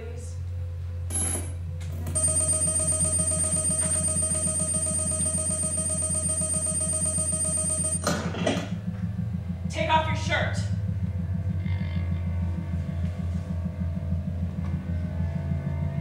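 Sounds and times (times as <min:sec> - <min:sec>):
electric bell ringing: 0:02.1 - 0:08.1.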